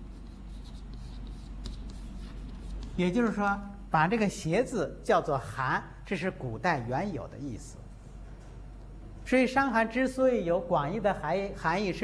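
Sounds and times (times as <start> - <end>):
chalk scratching on blackboard: 0.0 - 3.4
low steady hum: 0.0 - 12.0.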